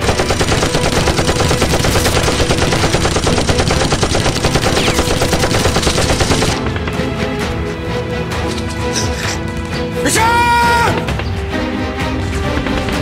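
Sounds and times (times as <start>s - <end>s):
automatic rifle fire: 0.0s - 6.7s.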